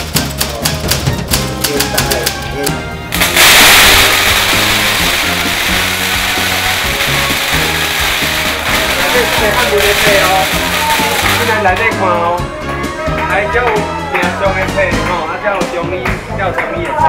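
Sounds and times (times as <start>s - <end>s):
background music: 0.0s - 17.0s
firecrackers crackling: 3.1s - 12.0s.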